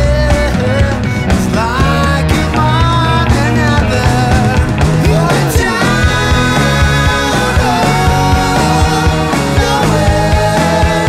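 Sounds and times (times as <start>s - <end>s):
fast drum beat: 0.0s - 11.0s
rock band music: 0.0s - 11.0s.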